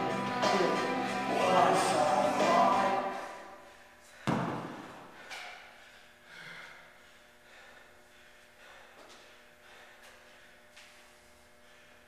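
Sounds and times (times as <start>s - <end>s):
kettlebell thud on rubber floor: 4.2s - 5.0s.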